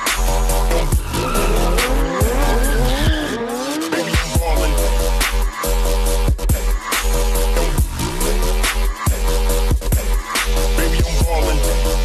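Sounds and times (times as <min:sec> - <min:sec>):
music: 0:00.0 - 0:12.0
car tyres squealing: 0:00.3 - 0:04.4.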